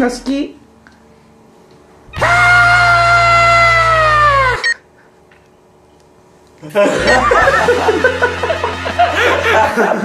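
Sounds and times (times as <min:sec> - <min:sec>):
high held vocal cry: 0:02.1 - 0:04.8.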